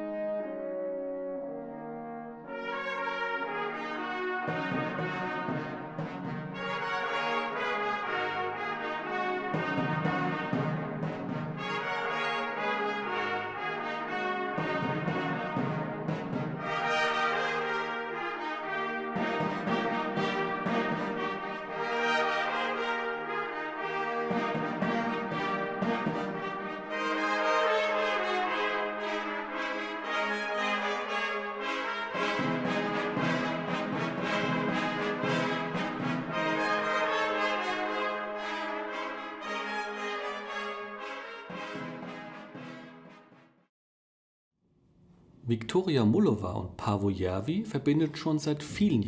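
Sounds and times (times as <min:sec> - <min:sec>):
orchestral brass fanfare: 0:00.0 - 0:43.7.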